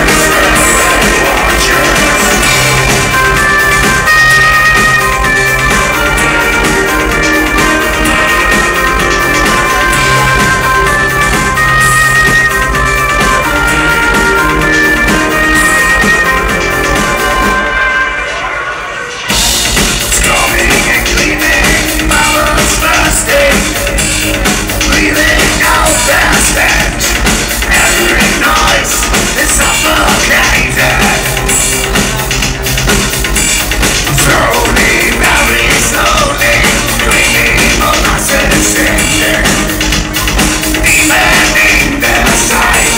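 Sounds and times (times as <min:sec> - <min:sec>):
drums and bass beat: 0:00.0 - 0:18.3, 0:19.1 - 0:42.9
electronic band playing live: 0:00.0 - 0:42.9
synthesizer chords: 0:00.0 - 0:42.9.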